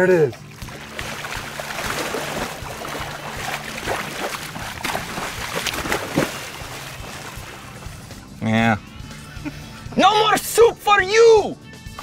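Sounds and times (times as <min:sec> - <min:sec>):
water splashing and slapping: 0:00.0 - 0:08.2.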